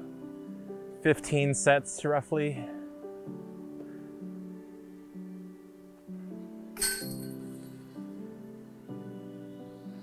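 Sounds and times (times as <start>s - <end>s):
background music: 0.0s - 10.0s
disc striking metal chains: 6.8s - 7.5s.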